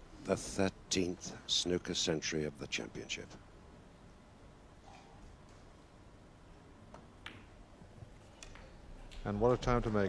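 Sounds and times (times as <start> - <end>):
snooker balls clicking: 6.8 - 10.0.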